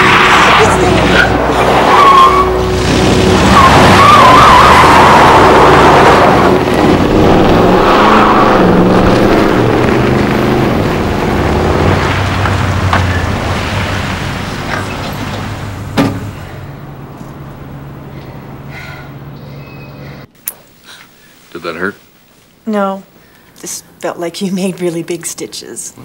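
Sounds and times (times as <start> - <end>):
tyres squealing: 0.0 - 10.7
truck engine revving: 0.0 - 18.6.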